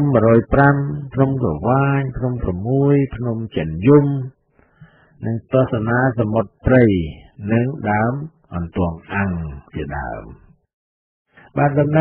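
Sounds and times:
man narrating: 0:00.0 - 0:04.4, 0:05.2 - 0:10.5, 0:11.4 - 0:12.0.

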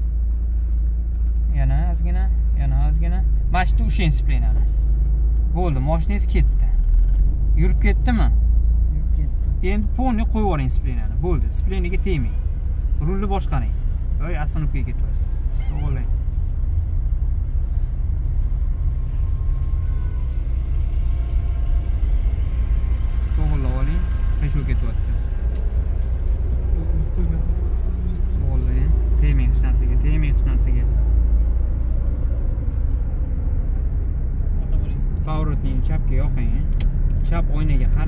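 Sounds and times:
car engine and tyres rumbling: 0:00.0 - 0:38.0.

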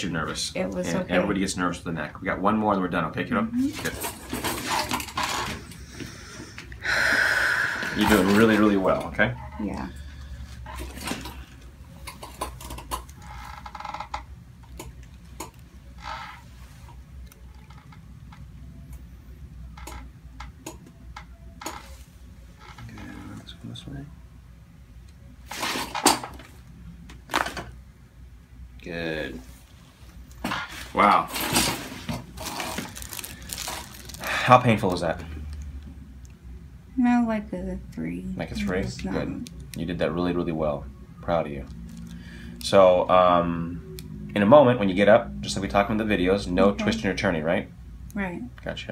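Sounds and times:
low room hum: 0:00.0 - 0:48.9
paper headrest crinkling: 0:31.8 - 0:35.0.

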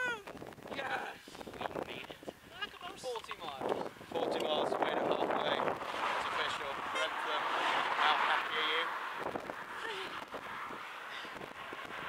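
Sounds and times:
steady rushing noise: 0:03.6 - 0:12.0
young people talking: 0:09.8 - 0:10.2.

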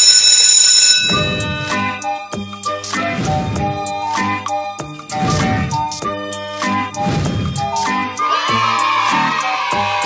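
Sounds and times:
electric school bell ringing: 0:00.0 - 0:02.2.

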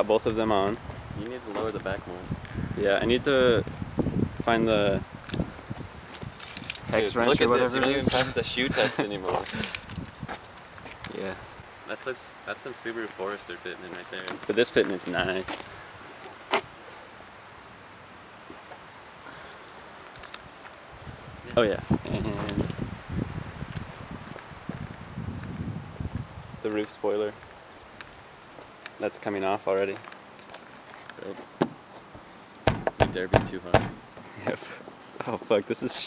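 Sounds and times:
wind rumbling on microphone: 0:00.0 - 0:11.7, 0:20.3 - 0:28.2
light metallic jingling: 0:06.0 - 0:11.5, 0:23.6 - 0:24.5, 0:27.0 - 0:27.4, 0:28.4 - 0:30.1.

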